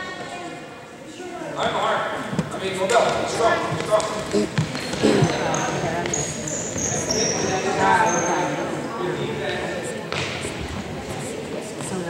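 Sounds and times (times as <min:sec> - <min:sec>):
shoes squeaking on floor: 0:03.8 - 0:08.7.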